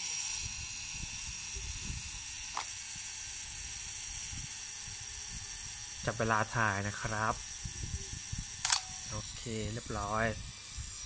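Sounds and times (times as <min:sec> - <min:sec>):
clockwork self-timer whirring: 0:00.0 - 0:11.0.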